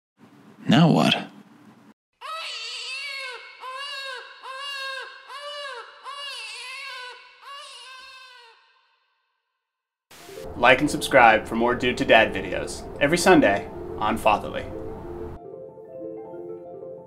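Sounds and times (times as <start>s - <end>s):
newborn baby crying: 2.2s - 8.9s.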